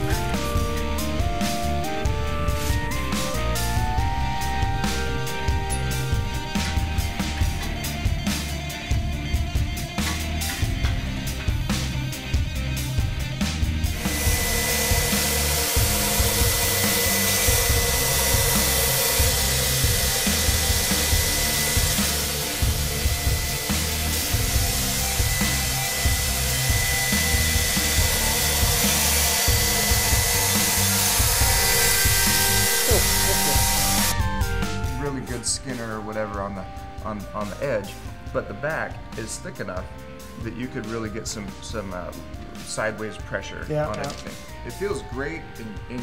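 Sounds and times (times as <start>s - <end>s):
music with heavy beat: 0.0s - 35.9s
power grinder grinding blade: 5.3s - 34.3s.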